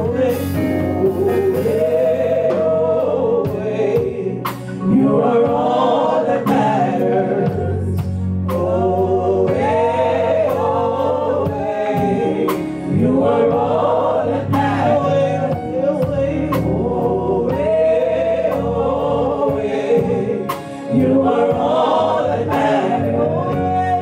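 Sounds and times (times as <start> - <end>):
women singing in harmony: 0.0 - 24.0.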